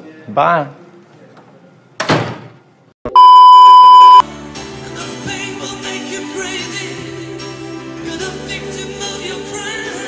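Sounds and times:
censor bleep tone: 3.1 - 4.2.

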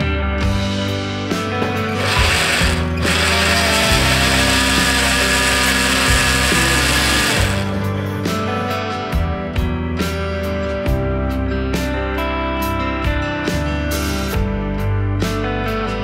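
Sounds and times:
background guitar music: 0.0 - 16.0
blender motor running: 1.9 - 7.9.

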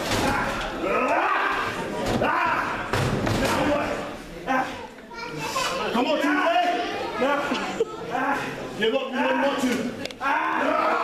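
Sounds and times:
raised voices: 0.0 - 11.0.

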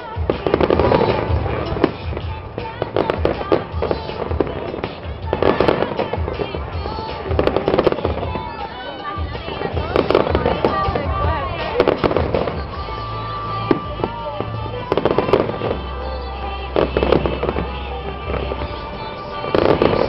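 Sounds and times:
fireworks bursting with bangs and crackles: 0.0 - 20.0
music with deep bass: 0.0 - 20.0.

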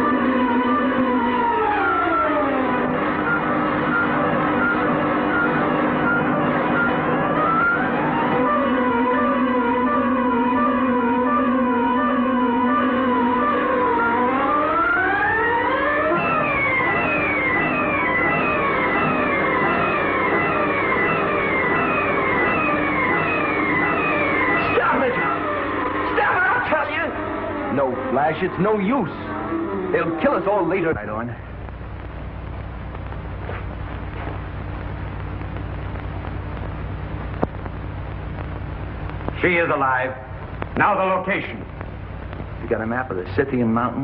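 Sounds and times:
spinning table electronic whine: 0.0 - 39.8
low drone with hiss: 0.0 - 44.0.

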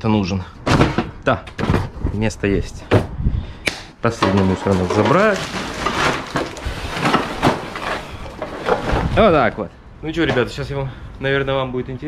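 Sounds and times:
plastic bag rustling: 4.4 - 9.6.

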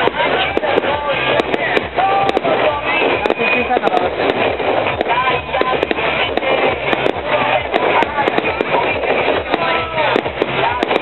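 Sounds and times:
fireworks bursting and crackling: 0.0 - 11.0.

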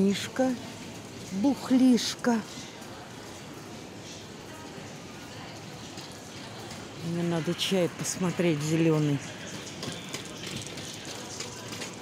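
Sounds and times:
supermarket background din: 0.0 - 12.0.

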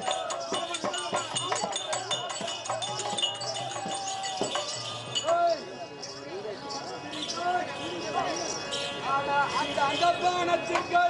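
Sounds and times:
metallic jingling: 0.0 - 7.5.

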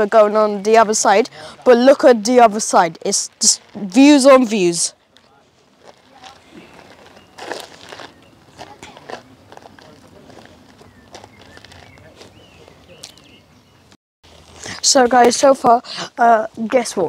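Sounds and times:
light crunches on gravel: 3.1 - 13.4
faint distant voices: 4.0 - 13.9.

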